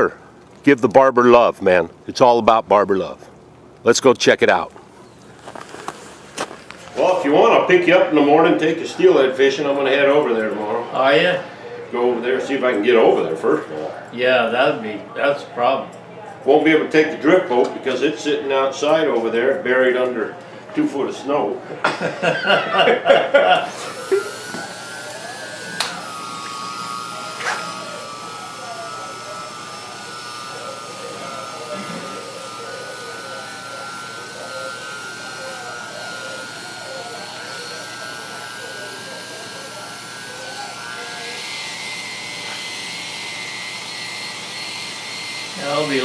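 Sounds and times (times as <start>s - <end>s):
electric hair clipper buzzing: 22.4s - 46.0s.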